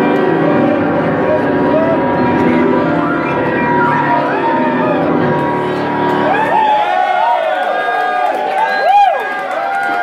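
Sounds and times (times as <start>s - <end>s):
grand piano playing: 0.0s - 7.4s
audience whooping and cheering: 1.4s - 10.0s.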